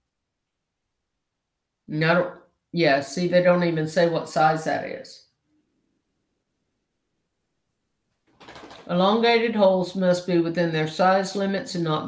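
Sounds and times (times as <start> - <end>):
woman speaking: 1.9 - 5.3, 8.8 - 12.0.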